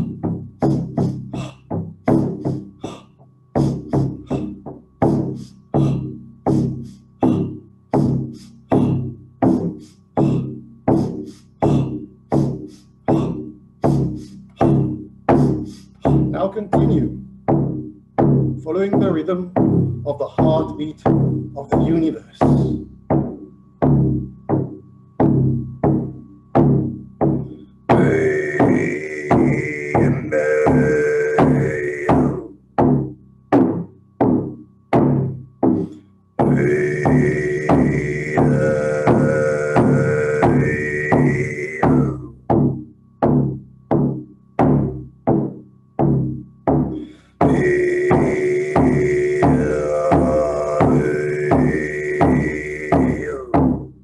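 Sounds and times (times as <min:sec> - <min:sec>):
drum beaten at steady pulse: 0:00.0 - 0:03.0, 0:03.6 - 0:54.0
didgeridoo drone: 0:00.0 - 0:54.0
sustained drone: 0:27.9 - 0:32.5, 0:36.4 - 0:42.2, 0:47.4 - 0:53.5.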